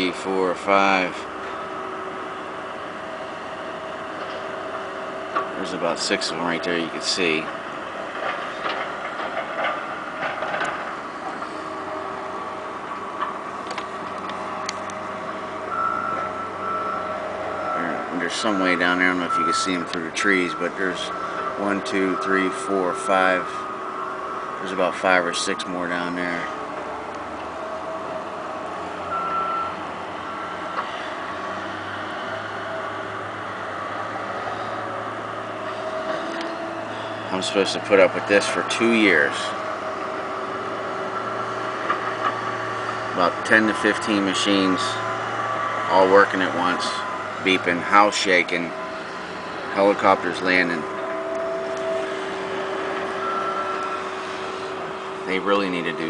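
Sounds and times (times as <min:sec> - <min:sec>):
heavy construction machinery running: 0:00.0 - 0:56.0
high steady whine: 0:00.0 - 0:56.0
backup alarm beeping: 0:15.7 - 0:24.3, 0:29.0 - 0:31.1, 0:48.7 - 0:55.2.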